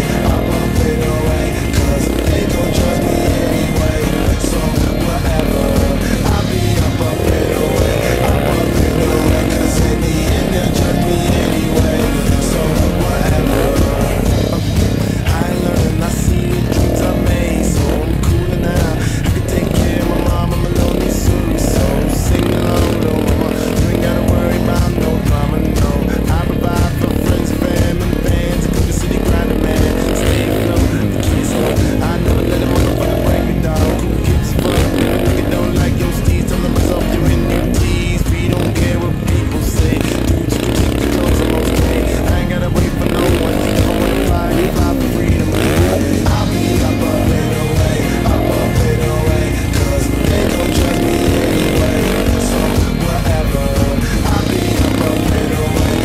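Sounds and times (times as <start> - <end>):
motocross bike engine revving: 0.0 - 56.0
music soundtrack: 0.0 - 56.0.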